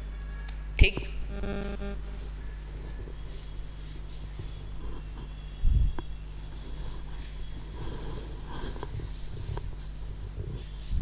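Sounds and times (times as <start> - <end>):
steady low hum: 0.0 - 11.0
soft rubbing and rustling: 2.2 - 11.0.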